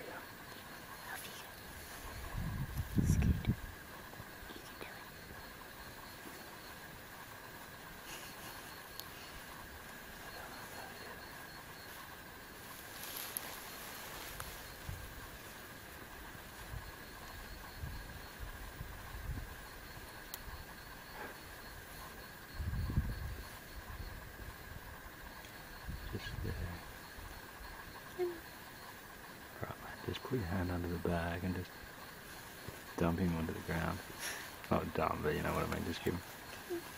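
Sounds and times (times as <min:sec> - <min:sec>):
insects calling: 0:00.0 - 0:36.9.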